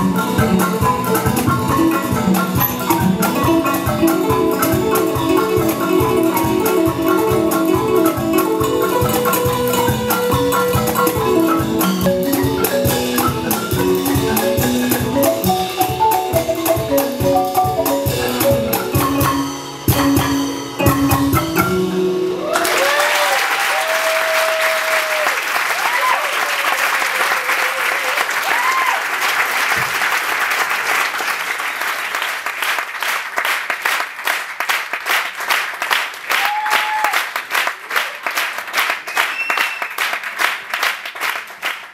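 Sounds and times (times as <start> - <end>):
live drum and percussion music: 0.0 - 23.2
cheering shouts: 22.4 - 29.2, 36.3 - 37.3
audience applause: 22.4 - 41.9.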